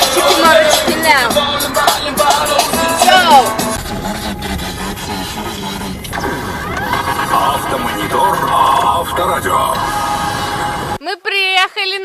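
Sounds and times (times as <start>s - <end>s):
car road noise from inside: 0.0s - 11.0s.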